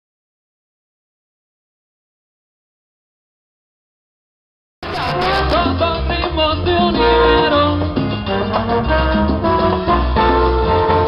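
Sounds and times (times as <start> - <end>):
live band playing instrumental: 4.8 - 11.0.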